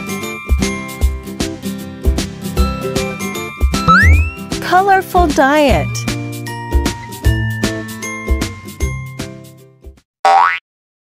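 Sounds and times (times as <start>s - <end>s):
children's music jingle: 3.8s - 5.8s
cartoon rising pitch sound effect: 3.9s - 4.5s.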